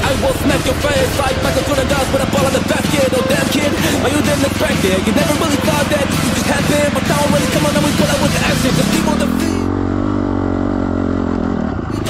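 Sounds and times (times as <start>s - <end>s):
dirt bike engine at high revs: 0.0s - 12.0s.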